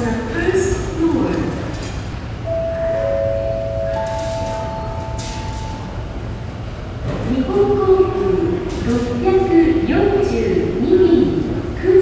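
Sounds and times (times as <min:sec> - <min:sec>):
low rumble of terminal hall: 0:00.0 - 0:12.0
public address chime: 0:02.4 - 0:06.3.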